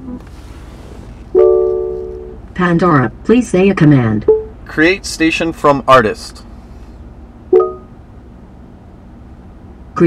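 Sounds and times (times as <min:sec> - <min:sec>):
faint car cabin hum: 0:00.0 - 0:10.0.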